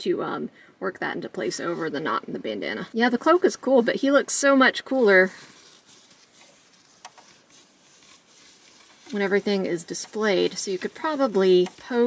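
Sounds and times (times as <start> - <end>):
fingers rustling cloth: 1.4 - 12.0.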